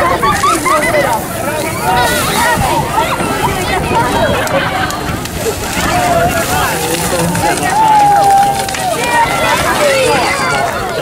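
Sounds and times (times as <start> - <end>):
people laughing: 0.0 - 11.0
people shouting: 0.0 - 11.0.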